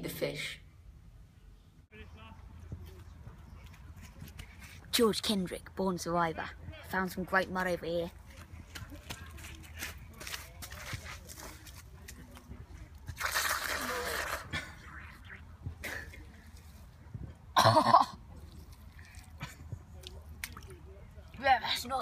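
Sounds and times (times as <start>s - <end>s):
wet squelching and slurping: 13.1s - 15.4s.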